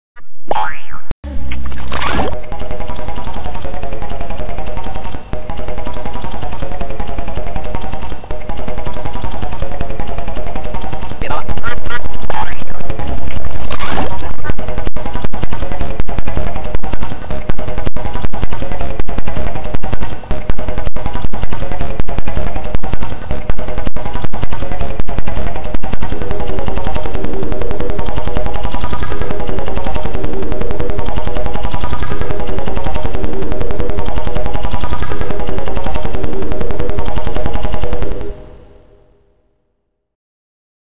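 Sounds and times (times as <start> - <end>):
distorted pitch-shifted remix music: 0.5 - 39.0.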